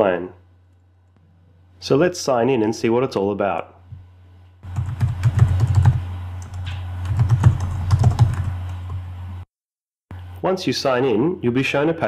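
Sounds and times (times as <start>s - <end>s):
low steady hum: 0.0s - 9.5s
computer keyboard typing: 4.6s - 9.0s.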